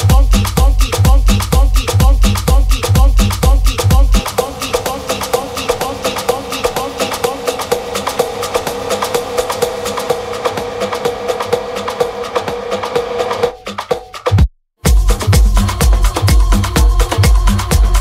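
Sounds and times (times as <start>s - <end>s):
kick drum beat: 0.0s - 4.2s, 13.4s - 18.0s
fast dense percussion: 0.0s - 18.0s
steady held synth note: 4.2s - 13.4s.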